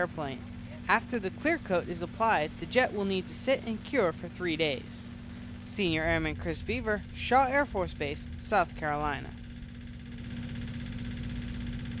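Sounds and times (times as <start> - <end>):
motor running with low hum: 0.0 - 12.0.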